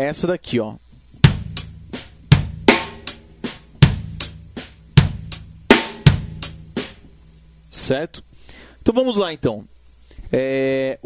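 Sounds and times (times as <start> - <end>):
drum kit funk groove: 1.2 - 7.8.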